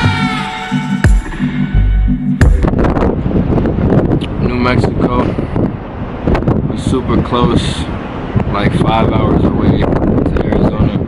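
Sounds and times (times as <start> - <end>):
bass-heavy music beat: 0.0 - 3.9
wind buffeting microphone: 2.4 - 11.0.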